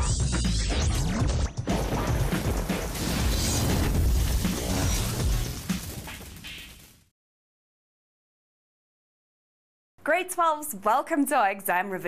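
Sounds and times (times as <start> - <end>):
television intro music: 0.0 - 7.1
sound-effect hits: 1.1 - 7.1
loud crashing hit: 1.7 - 7.1.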